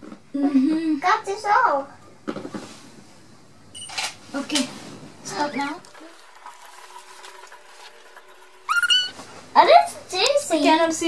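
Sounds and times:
child squealing: 8.7s - 9.2s.

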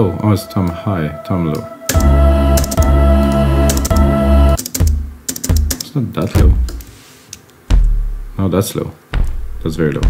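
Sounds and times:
computer keyboard typing: 1.9s - 5.9s
electronic drum tom hits: 4.8s - 5.7s, 7.7s - 8.4s.

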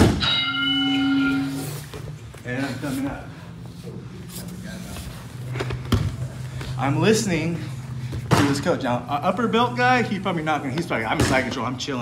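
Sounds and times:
steady humming tone: 0.0s - 10.8s.

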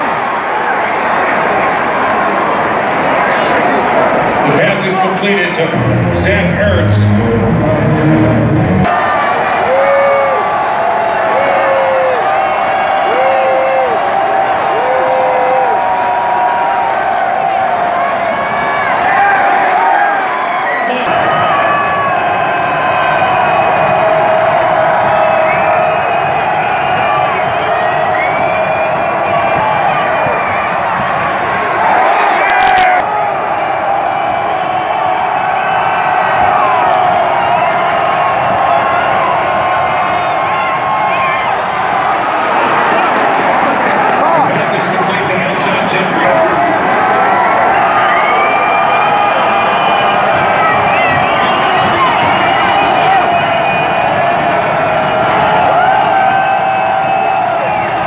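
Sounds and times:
fans talking and shouting: 0.0s - 58.0s
stadium crowd din: 0.0s - 58.0s.

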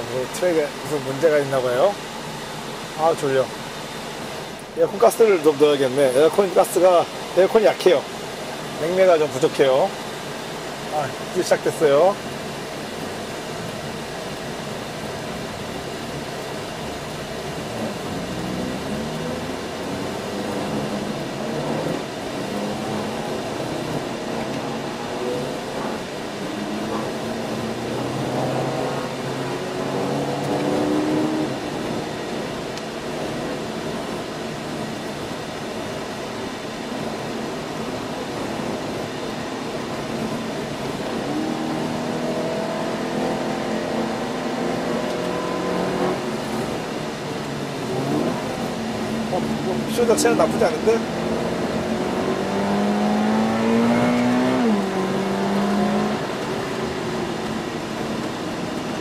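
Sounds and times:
car engine accelerating: 8.0s - 59.0s.

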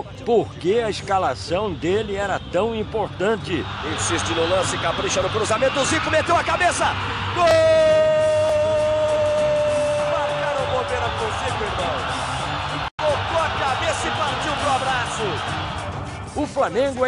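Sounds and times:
large stadium crowd noise: 0.0s - 17.0s.

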